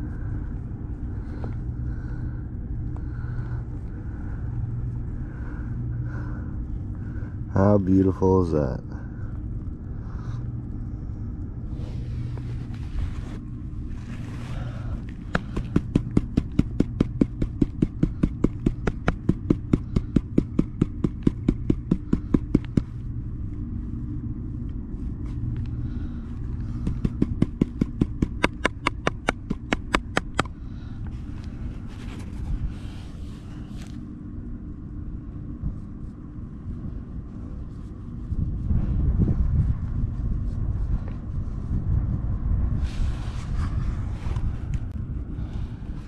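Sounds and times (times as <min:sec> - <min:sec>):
small engine running: 0:13.9 - 0:23.1, 0:25.6 - 0:31.0.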